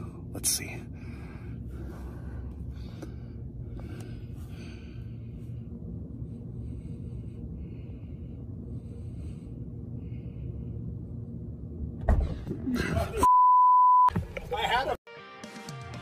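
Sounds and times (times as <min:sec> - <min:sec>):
soft breathing: 0:00.0 - 0:11.5
low steady rumble: 0:00.0 - 0:13.3.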